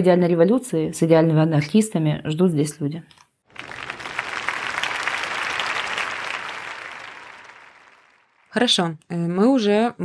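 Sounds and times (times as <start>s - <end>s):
audience applauding: 3.5s - 8.6s.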